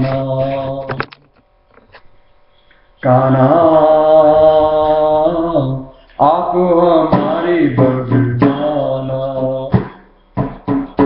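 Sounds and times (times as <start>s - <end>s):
man singing a long note: 0.0s - 1.0s, 3.0s - 10.0s.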